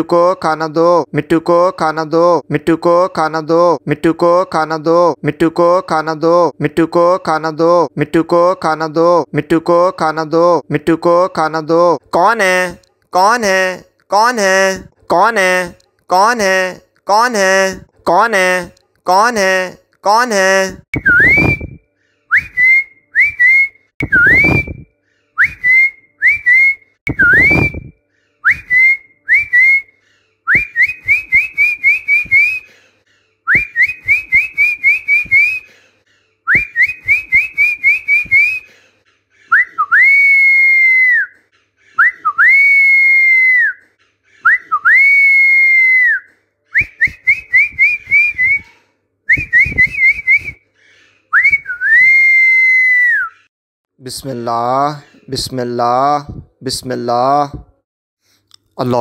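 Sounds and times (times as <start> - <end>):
person whistling: 21.0 - 29.9, 30.5 - 32.7, 33.5 - 35.7, 36.5 - 38.7, 39.5 - 41.4, 42.0 - 43.8, 44.4 - 50.6, 51.3 - 53.5.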